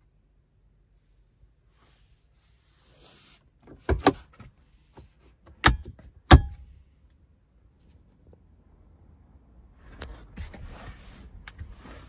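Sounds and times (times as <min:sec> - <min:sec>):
armrest latch clicks: 0:05.6 - 0:06.6.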